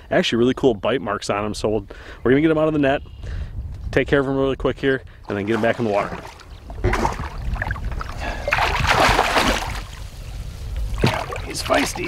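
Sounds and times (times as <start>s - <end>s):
fish thrashing in water: 5.3s - 10.0s, 11.0s - 12.0s.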